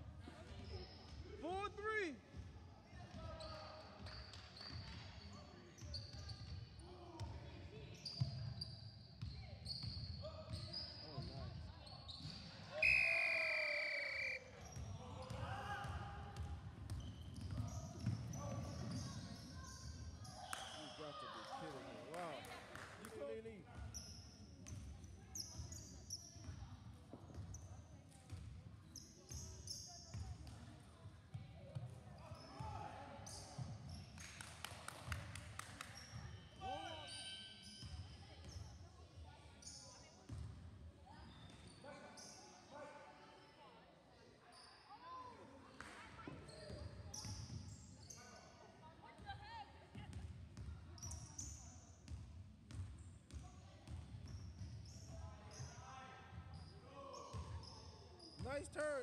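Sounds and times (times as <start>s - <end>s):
sneakers squeaking: 3.1s - 6.6s, 8.0s - 21.5s, 23.7s - 30.6s, 31.7s - 34.3s, 46.2s - 48.5s, 52.7s - 59.0s.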